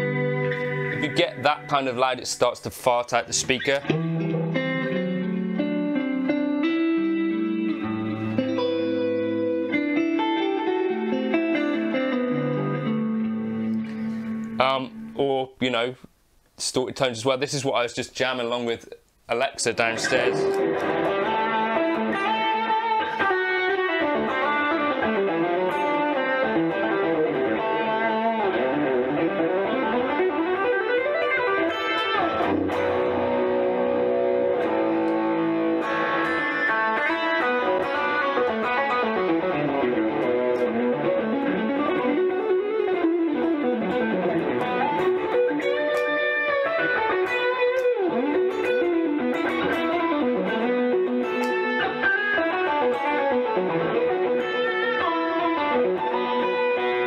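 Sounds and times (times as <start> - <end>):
electric guitar lead with bends: 0.0 - 2.2, 3.4 - 15.2, 19.8 - 57.0.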